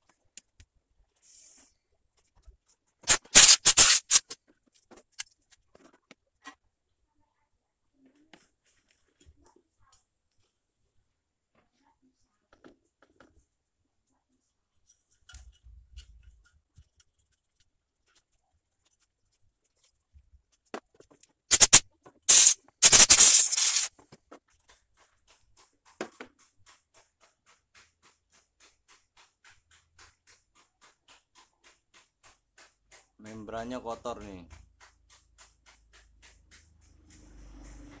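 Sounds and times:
brush scrubbing: 2.7s - 4.4s, 21.5s - 23.9s.

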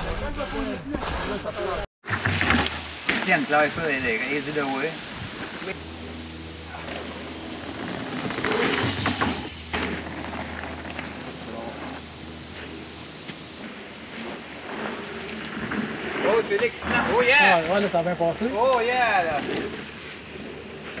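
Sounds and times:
bike tyres on dirt: 0.0s - 21.0s
wind noise on microphone: 5.0s - 5.8s.

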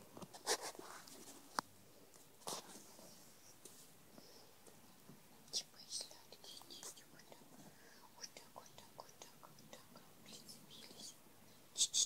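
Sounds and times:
kittens' claws rustling on fabric: 0.1s - 4.1s.

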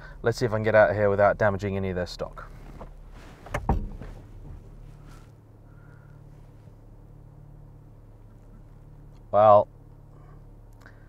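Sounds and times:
car engine running at low revs: 0.0s - 11.0s
low thump: 2.8s - 4.7s.

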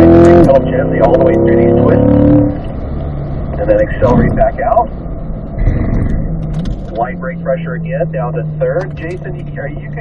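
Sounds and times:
car engine heard from cabin: 0.0s - 10.0s.

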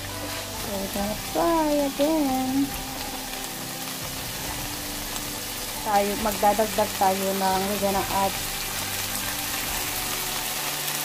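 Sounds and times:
meat sauce sizzling in a frying pan: 0.0s - 11.0s.

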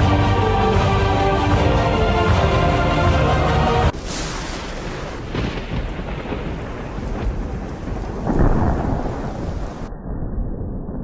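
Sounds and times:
steady rain: 0.0s - 9.9s
thunder rumbling: 3.8s - 11.0s.

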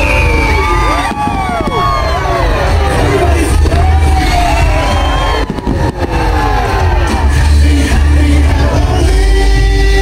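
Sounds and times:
fireworks launching and bursting: 0.0s - 8.6s
crowd cheering: 0.0s - 9.7s
loud show music: 0.0s - 10.0s.

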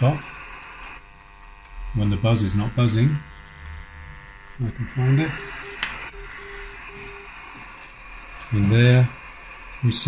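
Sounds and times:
radio static hiss: 0.0s - 10.0s
morse code beeps: 5.3s - 7.6s.

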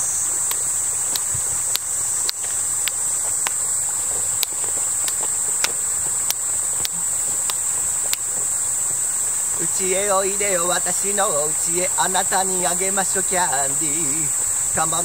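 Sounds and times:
high-pitched insect chorus: 0.0s - 15.0s
finger snaps: 0.4s - 8.3s.

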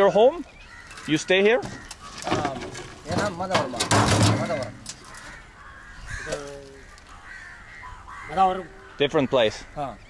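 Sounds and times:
crows cawing: 0.1s - 10.0s.

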